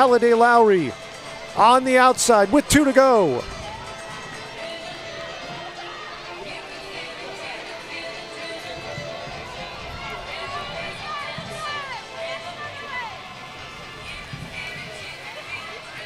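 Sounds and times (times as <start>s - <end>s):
background music: 0.0s - 16.0s
faint voices of spectators: 0.0s - 16.0s.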